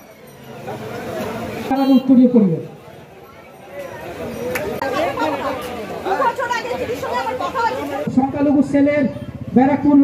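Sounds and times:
people talking over one another: 0:00.0 - 0:10.0
man on public-address system: 0:01.7 - 0:03.0, 0:08.1 - 0:10.0.

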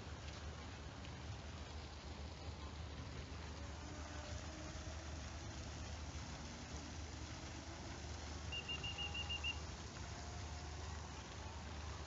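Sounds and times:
bird calling short high notes: 0:08.5 - 0:09.6.

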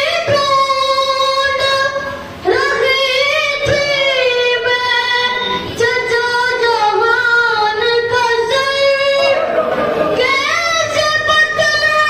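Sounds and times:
boy singing devotional verse: 0:00.0 - 0:09.4, 0:10.2 - 0:12.0.

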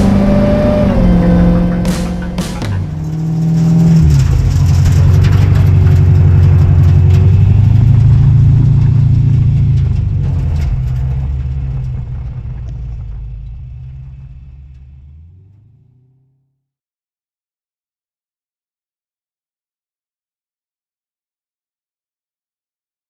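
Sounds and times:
truck engine driving by: 0:00.0 - 0:16.5.

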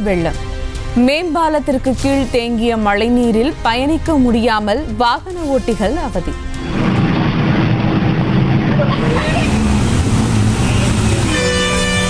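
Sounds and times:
motorbike engines: 0:06.6 - 0:12.0
street rumble: 0:06.6 - 0:12.0
vehicle horn: 0:10.6 - 0:12.0.

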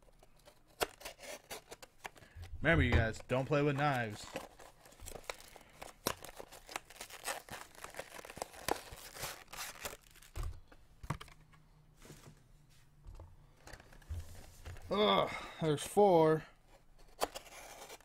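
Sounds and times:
plastic wrapping crinkling: 0:03.2 - 0:10.7.

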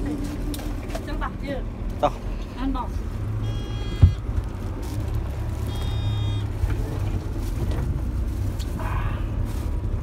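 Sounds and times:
bus engine and road rumble: 0:00.0 - 0:10.0.

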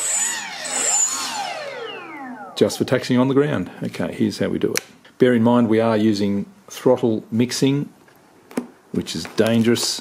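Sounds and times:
electric motor and propeller whine: 0:00.0 - 0:03.2.

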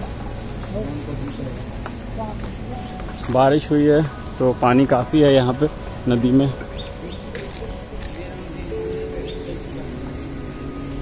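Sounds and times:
outdoor background hiss: 0:00.0 - 0:11.0
soft background music: 0:00.0 - 0:11.0.

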